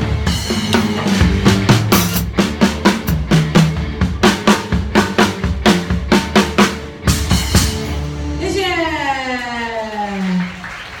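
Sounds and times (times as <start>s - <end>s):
drum hits: 0.0s - 8.0s.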